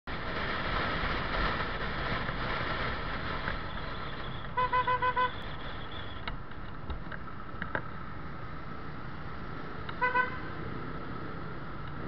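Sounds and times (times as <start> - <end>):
wind rumble on microphone: 0.1 - 8.0
motor scooter riding noise: 0.1 - 12.0
scooter horn toots: 4.6 - 5.4, 10.0 - 10.5.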